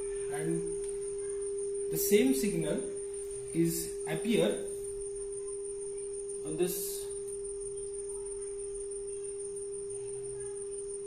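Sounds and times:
steady sine tone: 0.0 - 11.0.

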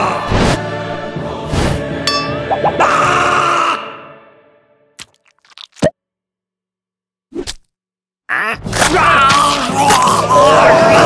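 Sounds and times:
ghostly scream: 2.7 - 4.1.

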